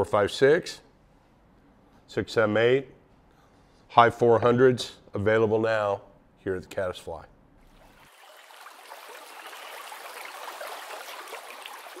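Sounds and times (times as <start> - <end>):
stream water running: 7.6 - 12.0.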